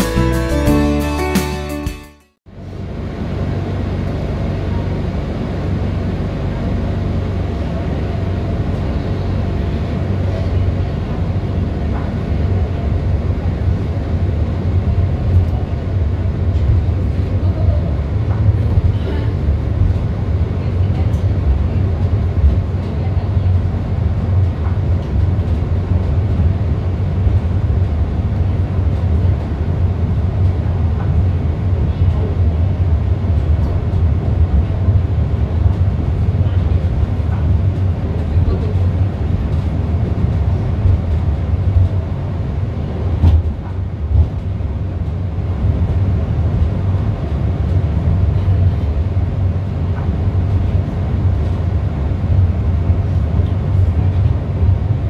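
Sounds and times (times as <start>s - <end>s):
funicular car running on track: 2.7s - 55.0s.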